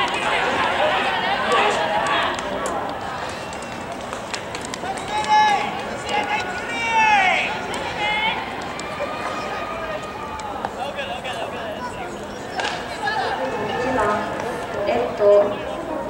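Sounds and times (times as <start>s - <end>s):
general hubbub: 0.0s - 16.0s
players shouting: 4.8s - 15.0s.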